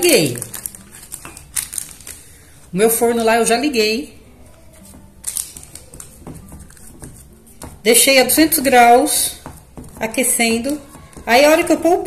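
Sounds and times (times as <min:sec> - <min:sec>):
parchment paper rustling: 0:00.0 - 0:03.7, 0:04.4 - 0:12.0.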